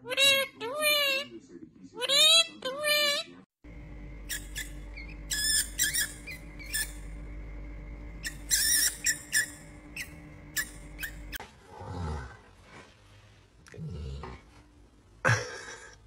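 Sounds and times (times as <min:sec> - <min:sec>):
steady low hum: 0:03.6 - 0:12.6
mouse squeaking: 0:04.2 - 0:07.2, 0:08.2 - 0:11.4.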